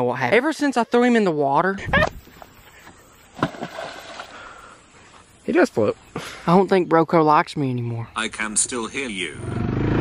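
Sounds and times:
object splashing into a pond: 3.4s - 4.4s.

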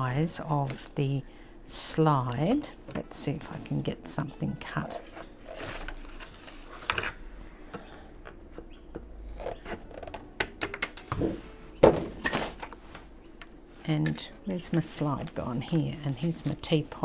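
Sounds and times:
plastic sheets rustling: 4.9s - 7.2s, 12.0s - 13.2s.

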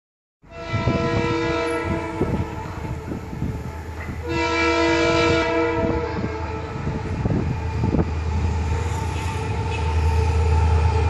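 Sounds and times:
diesel locomotive horn chord: 0.4s - 8.1s, 8.7s - 11.0s.

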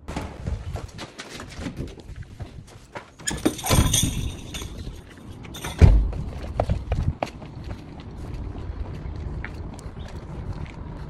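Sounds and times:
outdoor air noise: 0.0s - 11.0s
heavy low thump: 5.8s - 7.1s.

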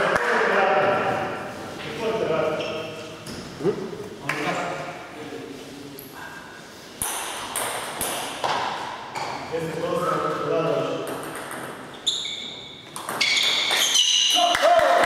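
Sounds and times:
table tennis ball bouncing: 7.0s - 9.4s, 11.0s - 14.4s
table tennis ball hit by bats: 7.0s - 9.4s, 11.0s - 11.9s, 12.9s - 14.4s.

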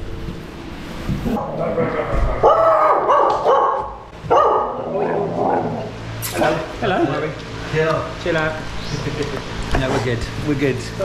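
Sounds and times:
dog barking: 2.4s - 5.2s.

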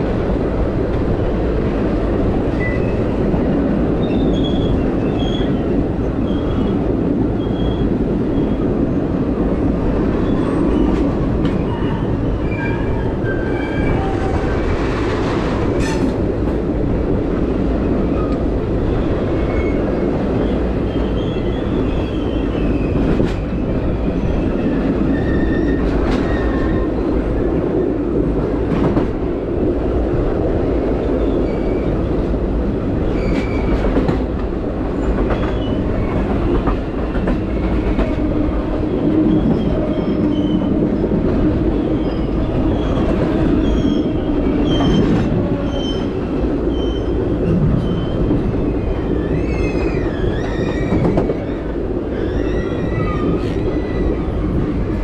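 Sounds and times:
train wheels rumbling on rails: 0.0s - 55.0s.

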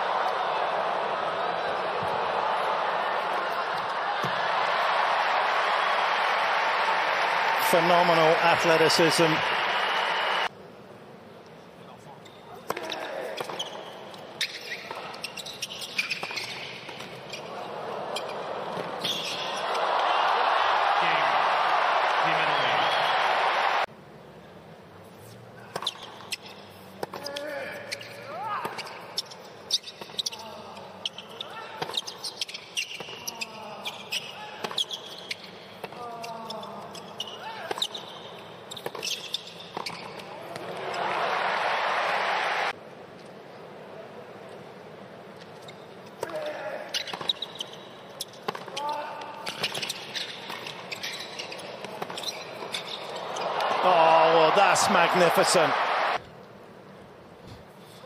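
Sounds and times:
crowd cheering and applauding: 0.0s - 10.5s, 19.6s - 23.9s, 40.6s - 42.8s, 53.2s - 56.2s.

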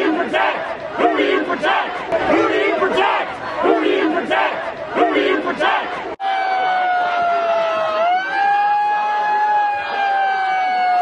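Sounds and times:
crowd noise: 0.0s - 11.0s
siren wailing: 6.2s - 11.0s.

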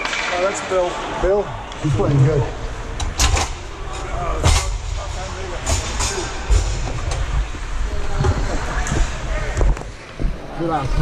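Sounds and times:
steady low rumble: 1.5s - 10.5s.

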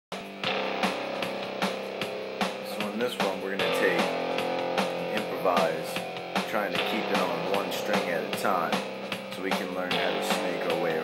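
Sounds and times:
drum kit steady beat: 0.1s - 11.0s
held chords: 0.1s - 11.0s.

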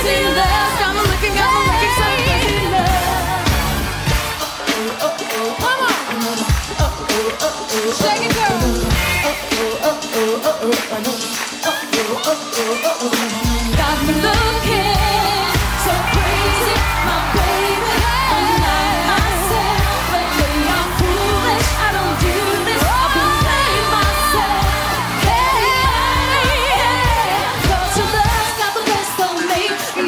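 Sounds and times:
backing track with drum beat: 0.0s - 30.0s
women singing: 0.0s - 30.0s.

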